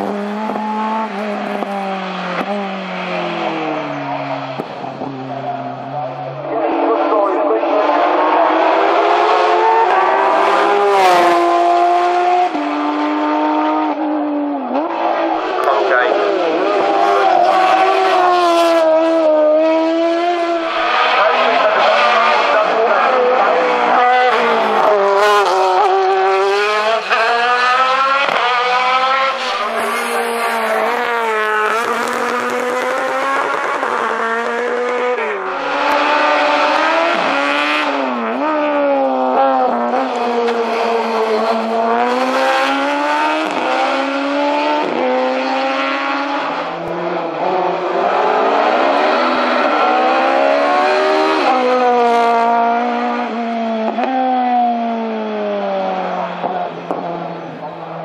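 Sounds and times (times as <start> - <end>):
racing car engines accelerating: 0.0 - 58.0.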